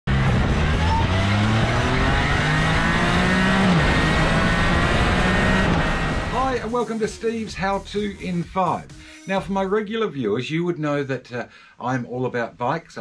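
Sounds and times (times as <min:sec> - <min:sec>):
motorcycle engine running: 0:00.1 - 0:06.6.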